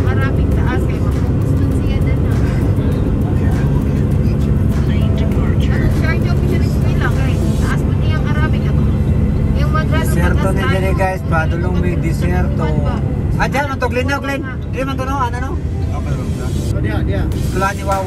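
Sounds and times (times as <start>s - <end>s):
music: 0.0s - 9.0s, 15.6s - 18.0s
car road and engine rumble: 0.0s - 18.0s
voices: 0.0s - 18.0s.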